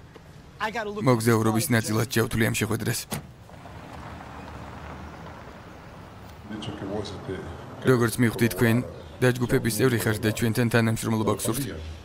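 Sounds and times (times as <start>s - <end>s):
car engine idling: 3.3s - 9.2s.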